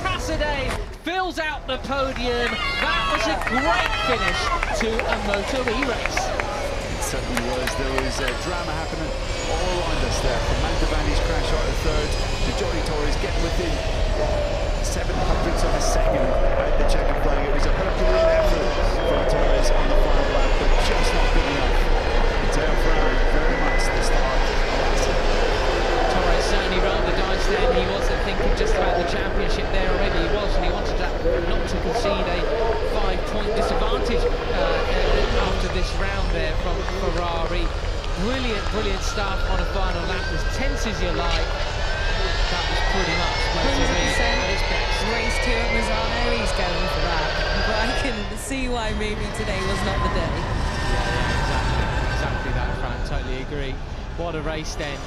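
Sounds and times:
electric motorcycles whining past: 0:02.6 - 0:55.0
person speaking: 0:43.3 - 0:50.4.

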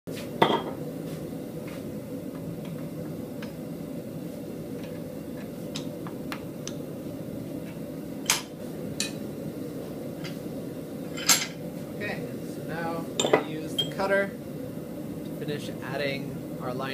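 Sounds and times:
steady low hum: 0:00.1 - 0:16.9.

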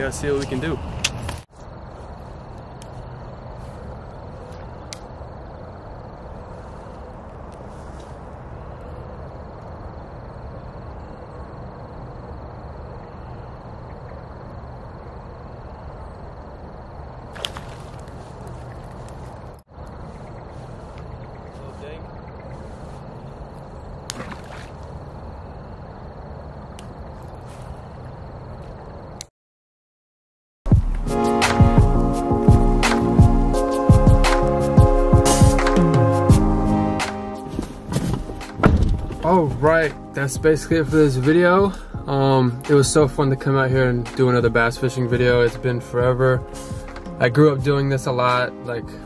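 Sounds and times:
pond ambience: 0:00.0 - 0:29.1
fishing rod cast swishing: 0:17.3 - 0:18.8.

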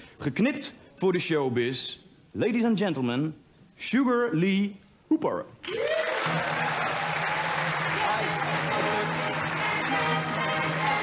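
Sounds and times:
audience applauding: 0:05.7 - 0:11.0
music playing: 0:06.3 - 0:11.0.

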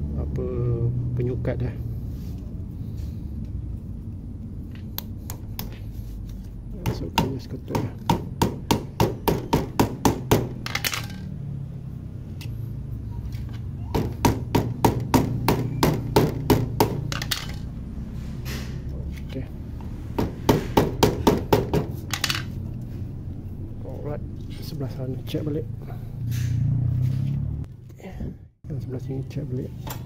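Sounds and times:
hammer tapping: 0:05.0 - 0:05.9, 0:06.8 - 0:10.6, 0:14.0 - 0:17.4, 0:20.2 - 0:22.0.

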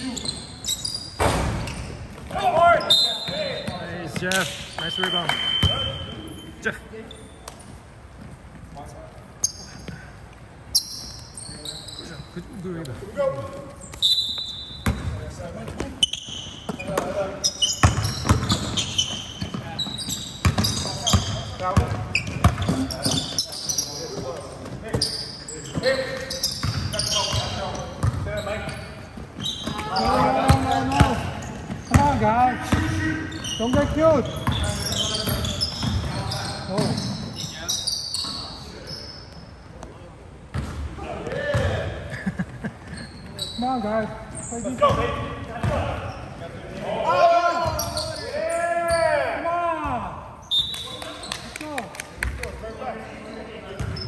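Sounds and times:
sneakers squeaking: 0:00.0 - 0:12.6, 0:13.2 - 0:51.5, 0:52.2 - 0:54.0.

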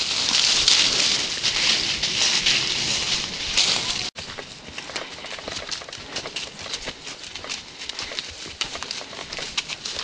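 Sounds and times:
hooves crunching dry leaves: 0:00.0 - 0:10.0.

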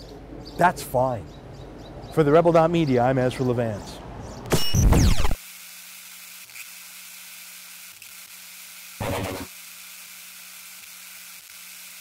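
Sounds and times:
static-like hiss: 0:07.7 - 0:12.0.

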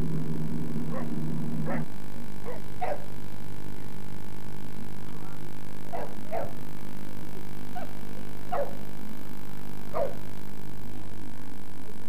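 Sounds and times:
steady low hum: 0:00.0 - 0:12.0
dog barking: 0:00.9 - 0:03.1, 0:05.9 - 0:06.6, 0:07.7 - 0:08.8, 0:09.9 - 0:10.2.

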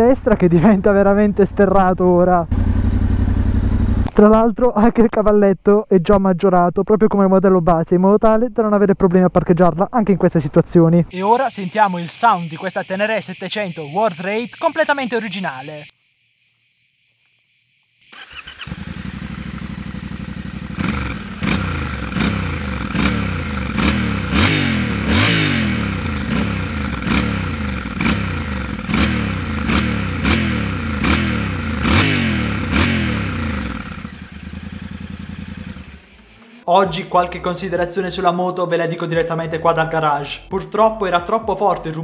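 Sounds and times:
motorcycle engine revving: 0:01.2 - 0:04.1, 0:18.1 - 0:36.6.

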